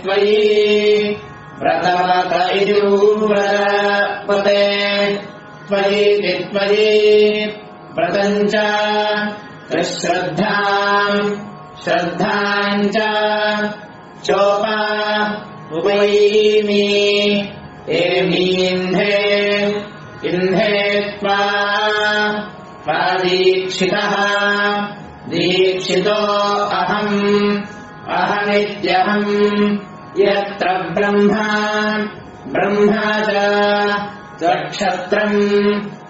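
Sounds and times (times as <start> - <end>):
person chanting mantras: 0.0 - 36.0.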